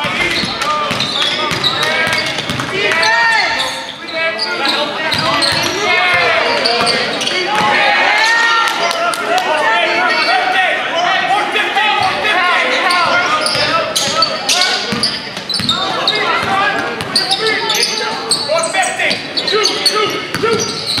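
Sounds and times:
people shouting in echoing gym: 0.0 - 21.0
basketball bouncing on hardwood floor: 0.1 - 2.7.

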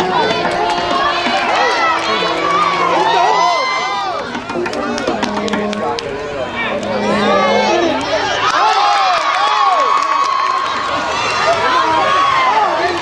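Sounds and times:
spectators cheering and shouting: 0.0 - 13.0.

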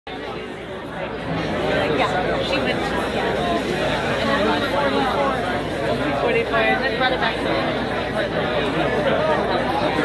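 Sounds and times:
crowd chatter: 0.1 - 10.0.

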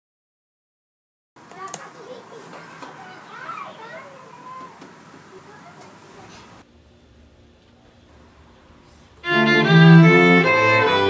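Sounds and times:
faint background voices: 1.4 - 6.7
low room noise: 1.4 - 11.0.

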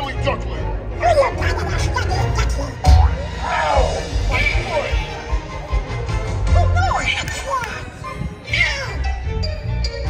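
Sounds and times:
stage show music: 0.0 - 10.0.

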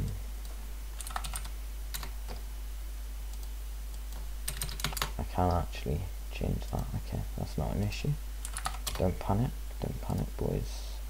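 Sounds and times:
steady low hum: 0.0 - 11.0
keyboard keystrokes: 1.0 - 2.4, 4.5 - 5.1.

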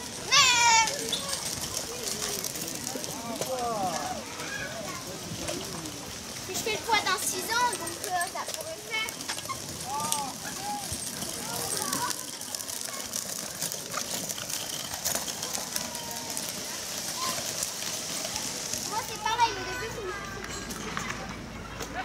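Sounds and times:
children's voices and calls: 0.0 - 22.0
wheels rolling on gravel: 0.0 - 22.0.

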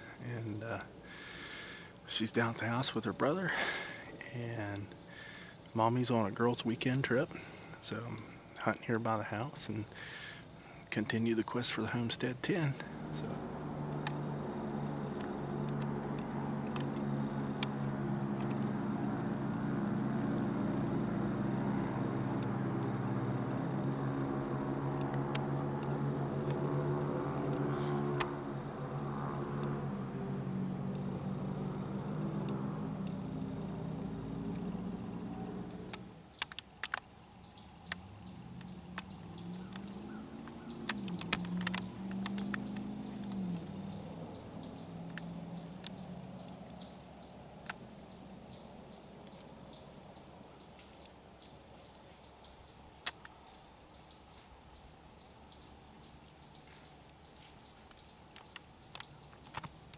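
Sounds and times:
engine running steadily: 11.9 - 37.0, 37.8 - 48.7
drone rising and falling in pitch: 12.8 - 36.2
sharp clicks: 13.9 - 14.3, 15.1 - 18.7, 35.3 - 46.9.

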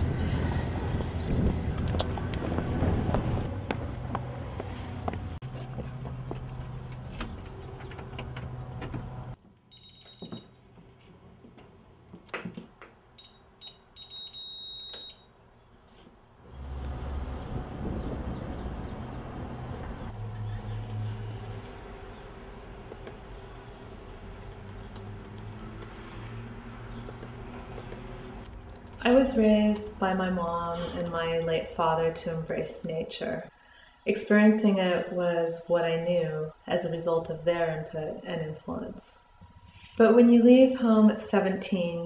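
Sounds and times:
steady low rumble: 0.0 - 5.4, 16.5 - 24.5
high-heeled footsteps on asphalt: 1.7 - 6.8
alarm keypad beeping: 9.7 - 10.5, 13.2 - 15.3.

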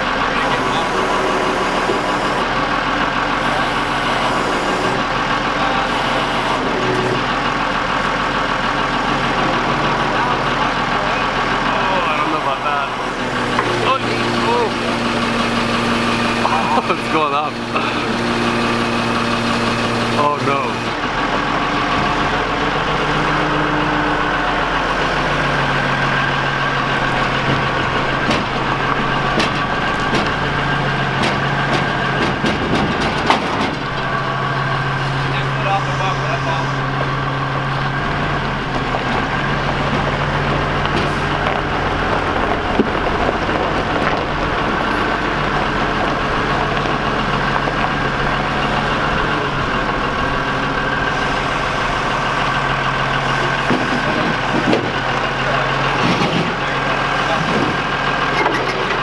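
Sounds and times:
forklift engine running: 0.0 - 59.0.

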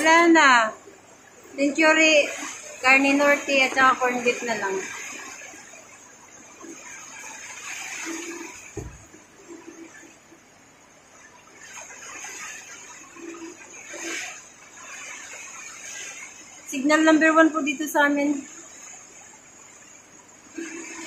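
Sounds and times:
dull thump: 8.7 - 9.2.

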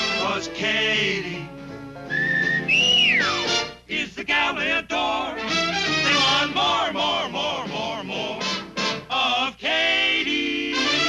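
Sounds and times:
jazzy band music: 0.0 - 3.9, 5.4 - 6.6
wolf whistle: 2.1 - 3.6.

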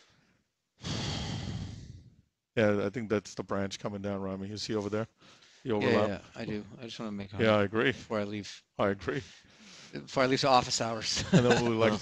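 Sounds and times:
long breathy exhale: 0.8 - 2.2.

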